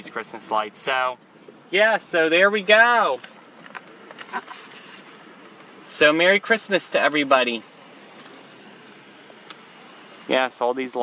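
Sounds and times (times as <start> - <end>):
car cabin engine and road hum: 0.0 - 11.0.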